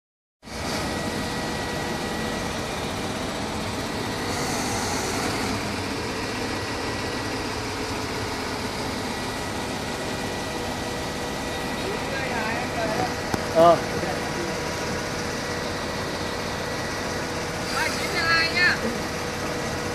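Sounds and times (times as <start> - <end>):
diesel engine running: 0.4 - 19.9.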